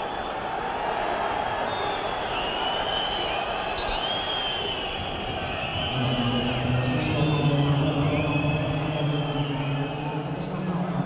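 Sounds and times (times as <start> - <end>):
shrill whistles: 1.5 - 6.4.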